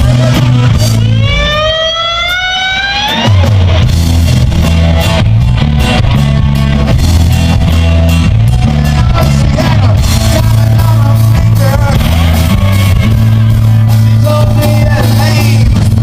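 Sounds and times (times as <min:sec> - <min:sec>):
blues-rock band playing live: 0:00.0 - 0:16.0
rising electric guitar note: 0:00.0 - 0:16.0.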